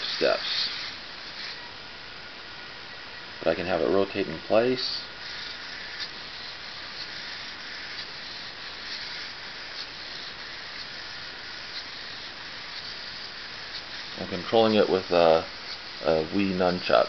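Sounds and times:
robot servos whirring: 0.0s - 1.6s, 4.8s - 17.0s.

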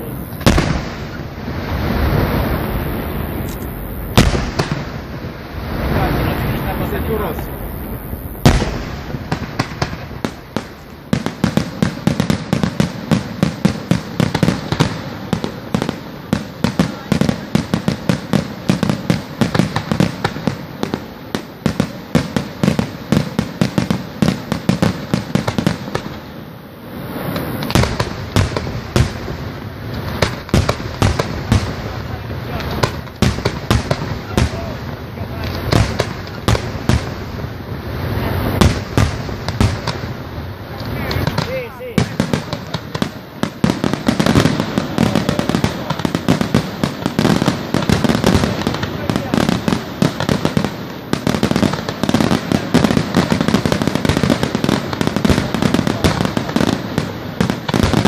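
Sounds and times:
fireworks bursting and crackling: 0.0s - 58.0s.

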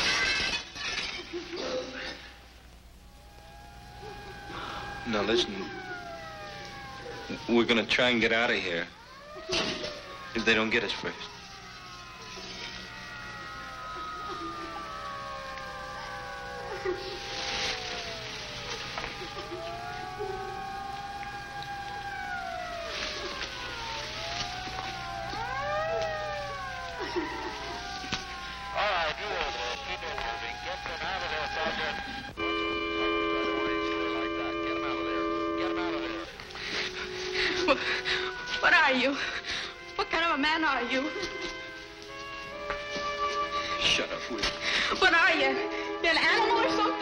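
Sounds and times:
police sirens wailing: 2.8s - 47.0s.

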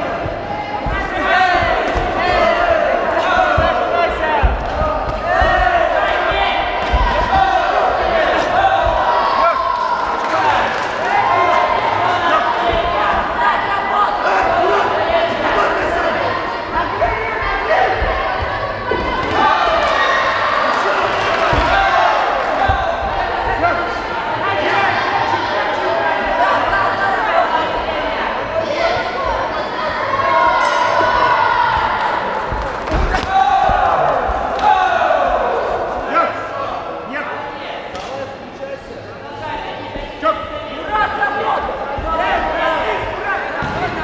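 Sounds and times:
voices calling out in a hall: 0.0s - 44.0s.

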